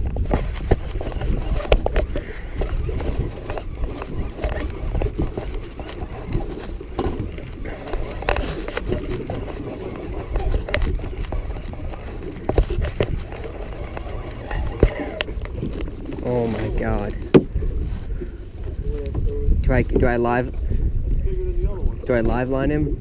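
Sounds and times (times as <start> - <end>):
water washing against boat hull: 0.0 - 22.3
wind rumbling on microphone: 0.0 - 23.0.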